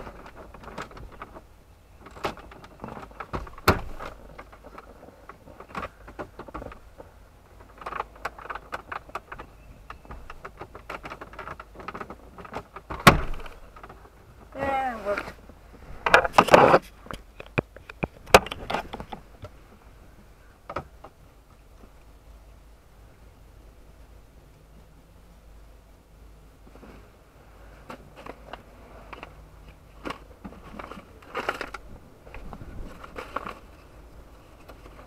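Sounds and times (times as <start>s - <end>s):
clicks taps and rustles: 0.0s - 14.6s, 15.3s - 19.6s.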